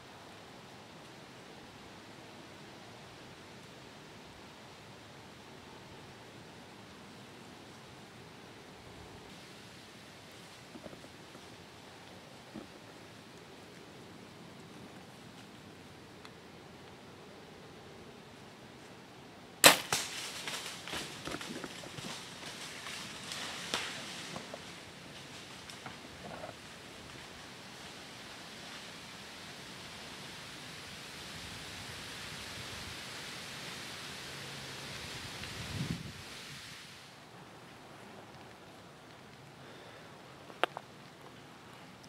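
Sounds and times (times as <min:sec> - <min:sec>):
steady hiss: 0:00.0 - 0:42.0
bowstring crack: 0:19.6 - 0:22.7
deer crashing through dry leaves: 0:19.6 - 0:29.0.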